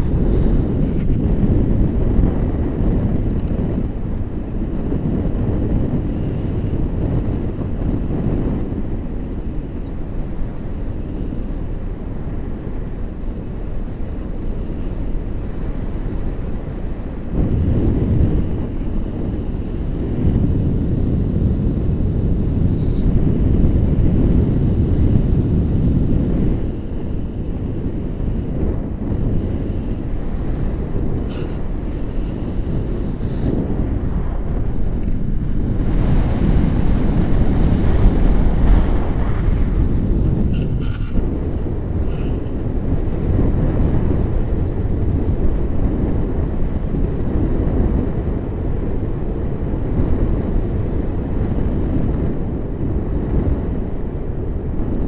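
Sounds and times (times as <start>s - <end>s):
wind noise on microphone: 0.0s - 55.0s.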